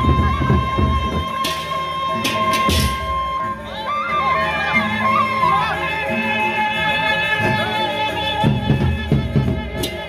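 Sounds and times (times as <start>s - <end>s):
heavy drum strokes: 0.0s - 3.4s
percussion ensemble playing: 0.0s - 10.0s.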